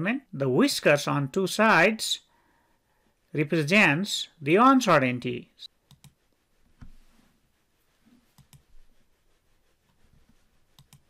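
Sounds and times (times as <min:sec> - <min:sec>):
computer mouse clicks: 0:05.8 - 0:06.2, 0:08.4 - 0:08.7, 0:10.8 - 0:11.0.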